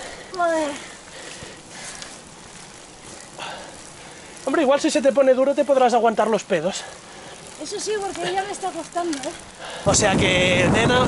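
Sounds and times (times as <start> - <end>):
tyre hiss on wet road: 0.0 - 10.6
wind on microphone: 9.6 - 11.0.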